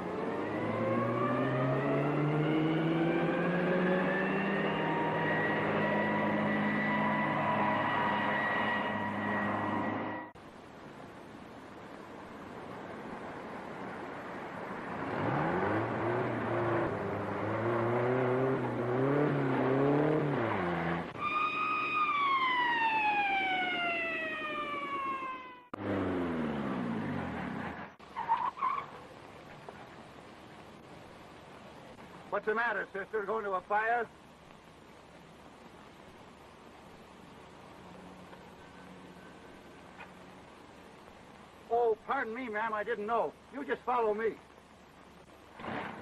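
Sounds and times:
car engine accelerating: 0:00.0 - 0:10.4, 0:14.9 - 0:21.2, 0:25.4 - 0:28.0
siren wailing: 0:00.0 - 0:10.4, 0:20.6 - 0:25.8
motorcycle engine revving: 0:15.0 - 0:21.2, 0:25.6 - 0:28.0.

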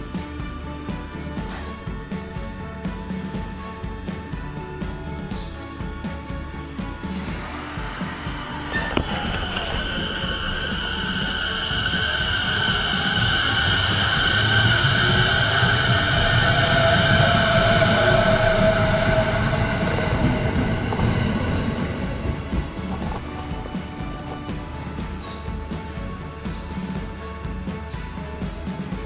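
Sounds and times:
background music: 0:00.0 - 0:29.0
electric train whining and rumbling: 0:00.0 - 0:29.0.

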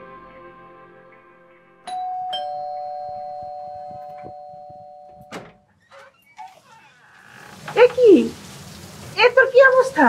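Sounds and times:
doorbell click: 0:01.9 - 0:05.6
two-tone doorbell chime: 0:01.9 - 0:05.6.

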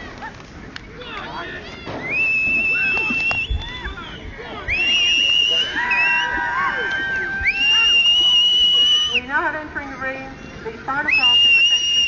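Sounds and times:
people whistling shrilly: 0:01.8 - 0:09.3, 0:11.0 - 0:12.0.

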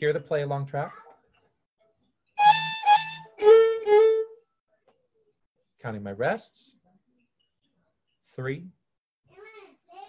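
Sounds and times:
violin playing short notes: 0:02.4 - 0:04.3.

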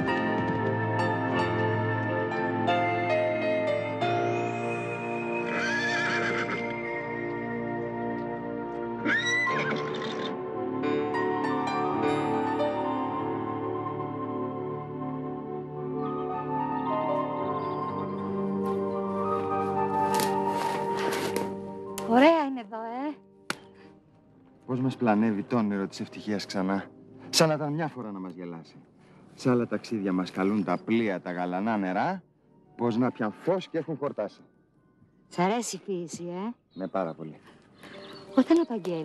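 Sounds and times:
background music: 0:00.0 - 0:39.0
horse whinnying: 0:05.4 - 0:07.0, 0:09.0 - 0:10.4.

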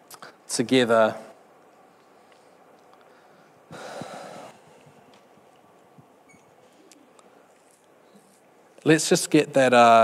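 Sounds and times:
breath puff into microphone: 0:03.7 - 0:04.6.

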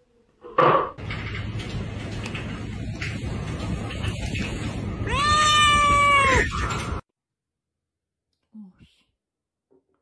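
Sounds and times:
cat meowing: 0:05.0 - 0:06.6.

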